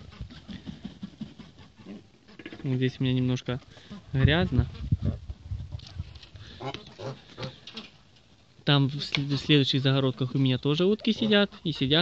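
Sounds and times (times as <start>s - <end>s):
geese calling: 6.4s - 8.4s, 9.0s - 12.0s.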